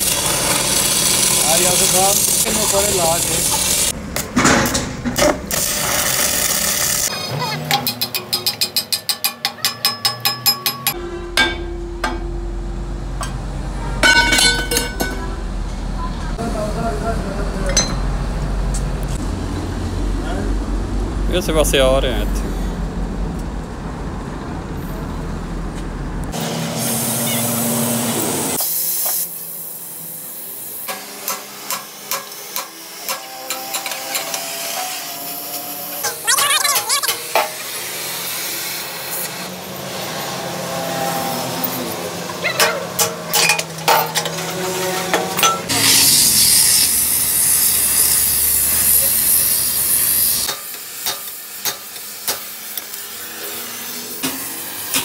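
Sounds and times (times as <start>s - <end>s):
loud steady hiss: 45.7s - 55.0s.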